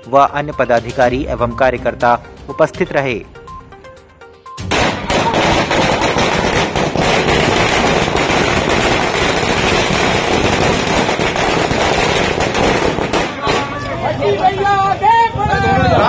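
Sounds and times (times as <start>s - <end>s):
firecrackers crackling: 4.6s - 14.7s.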